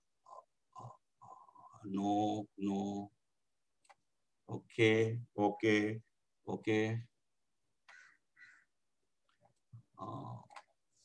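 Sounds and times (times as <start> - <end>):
man speaking: 10.0 - 10.5.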